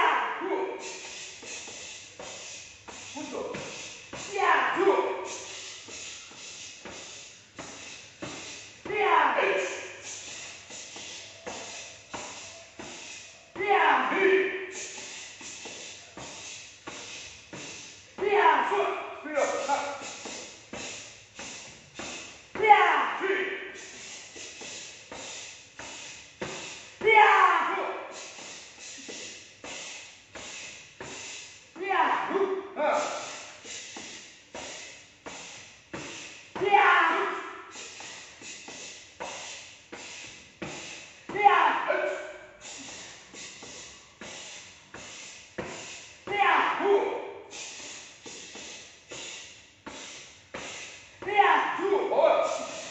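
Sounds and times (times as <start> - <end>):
person shouting: 0.0 - 0.9, 4.3 - 5.3, 8.9 - 9.9, 13.6 - 14.7, 18.2 - 20.0, 22.6 - 23.7, 27.0 - 28.2, 31.8 - 33.4, 36.6 - 37.6, 41.3 - 42.5, 46.3 - 47.4, 51.2 - 52.9.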